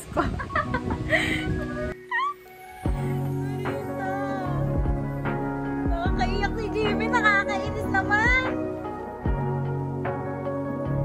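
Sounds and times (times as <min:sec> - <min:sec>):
high squealing laugh: 0:00.4 - 0:04.0
background music with bass line: 0:02.8 - 0:11.0.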